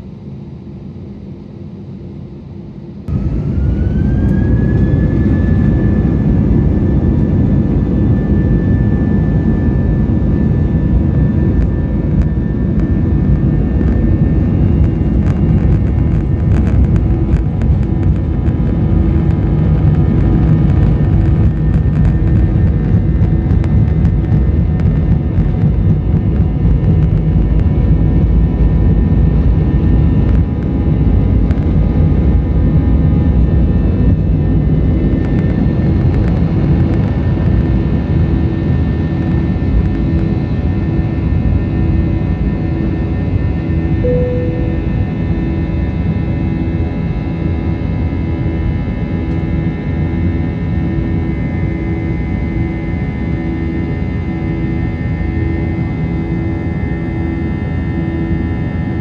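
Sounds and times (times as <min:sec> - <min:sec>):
jet engines spooling up: 0:03.1 - 0:25.6.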